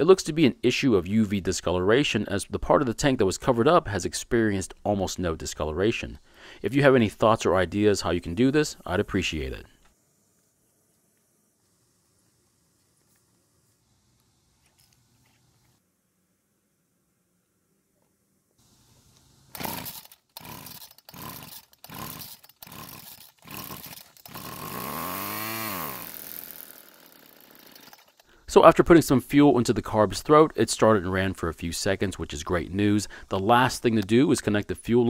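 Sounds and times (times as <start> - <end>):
string trimmer engine running: 19.2 - 28.3
starter cord pulls: 19.5 - 28.3.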